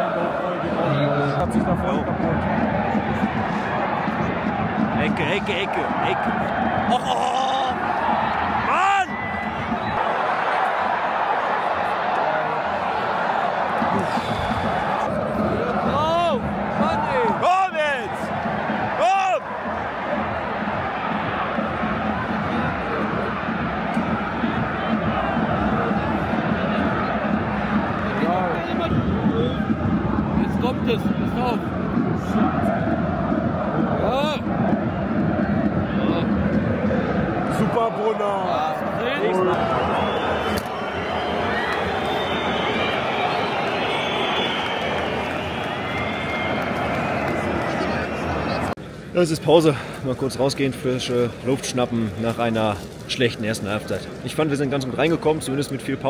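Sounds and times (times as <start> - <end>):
stadium crowd chanting and singing: 0.0 - 48.8.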